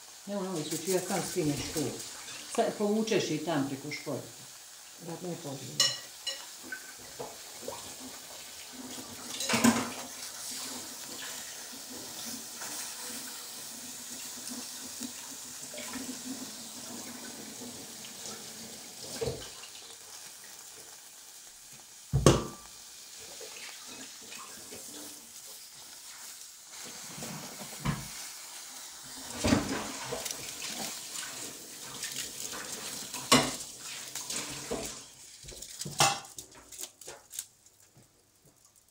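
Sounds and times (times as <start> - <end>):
mushrooms sizzling on foil: 0.0 - 38.9.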